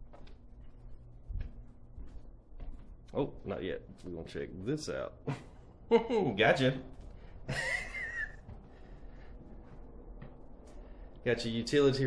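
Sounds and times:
man laughing: 0:05.2 - 0:06.6, 0:07.4 - 0:08.5.

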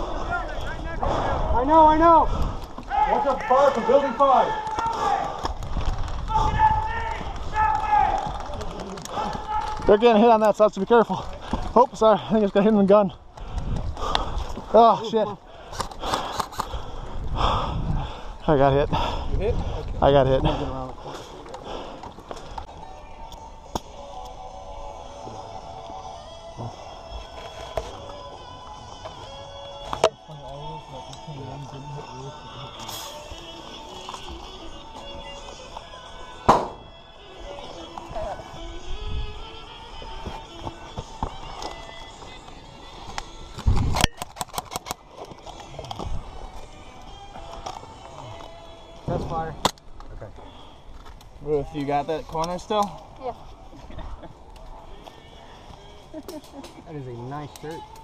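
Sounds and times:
background music: 0:20.0 - 0:58.0
faint voices: 0:50.0 - 0:58.0.

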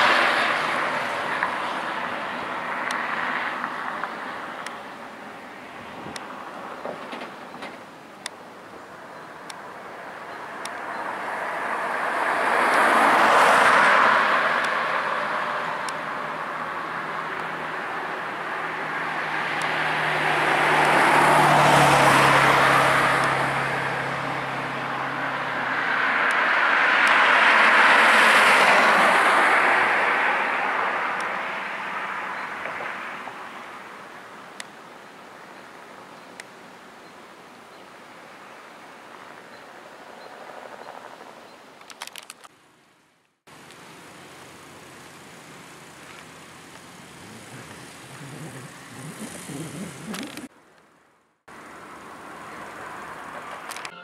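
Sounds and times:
helicopter flying: 0:46.0 - 0:50.5.

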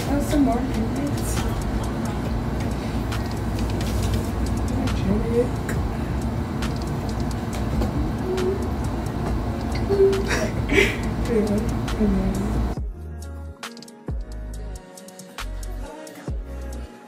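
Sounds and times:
low room noise rumble: 0:00.0 - 0:13.0
faint background music: 0:00.0 - 0:17.0.

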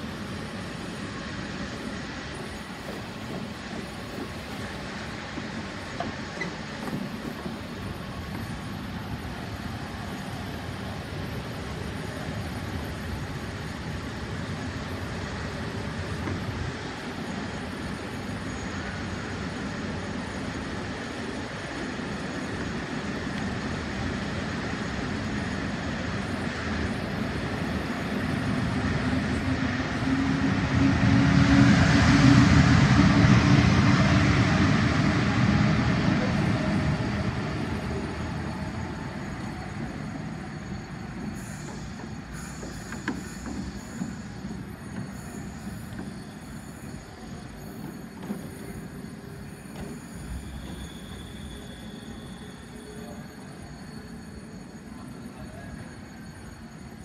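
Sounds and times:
electric train hum and hiss: 0:00.0 - 0:57.0
train rumbling past: 0:00.0 - 0:57.0.

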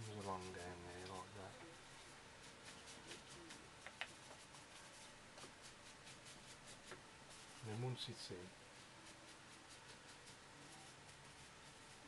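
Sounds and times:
paintbrush scratching on paper: 0:00.0 - 0:01.5, 0:02.4 - 0:12.0.

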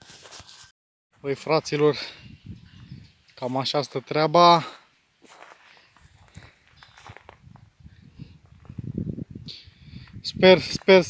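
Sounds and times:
footsteps on grass: 0:03.4 - 0:07.6.

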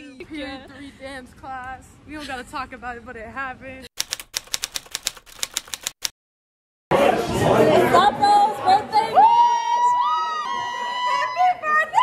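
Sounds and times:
typewriter-style clicking: 0:04.0 - 0:06.1.

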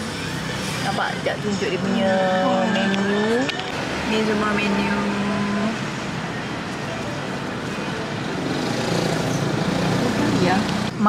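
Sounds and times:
busy street traffic: 0:00.0 - 0:11.0.

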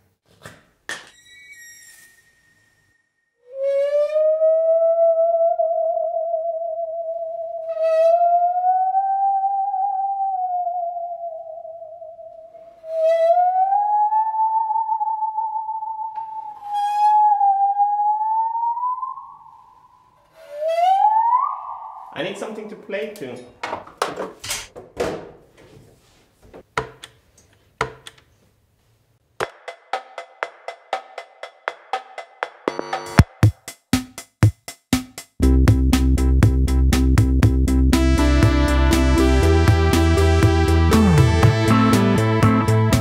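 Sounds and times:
bowed musical saw: 0:20.3 - 0:22.1.

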